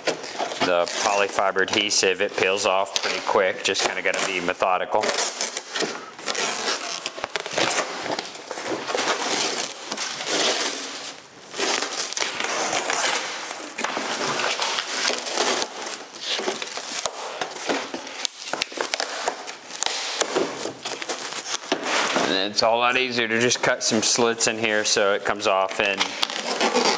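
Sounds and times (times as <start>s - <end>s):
fabric tearing with crackling: 3.9s - 8.0s, 11.5s - 17.2s, 25.9s - 26.9s.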